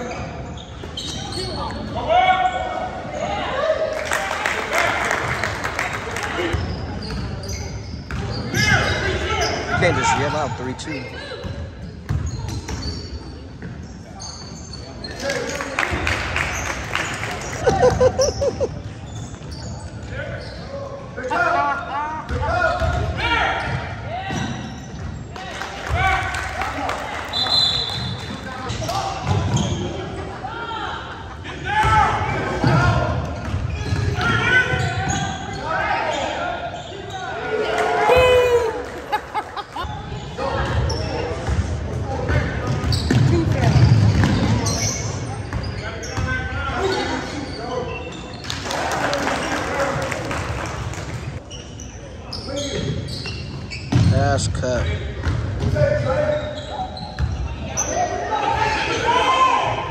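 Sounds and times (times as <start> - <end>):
sneakers squeaking: 0.0 - 3.7, 6.2 - 26.0, 27.2 - 38.8, 39.6 - 48.6, 51.1 - 59.9
voices in a hall: 0.0 - 59.9.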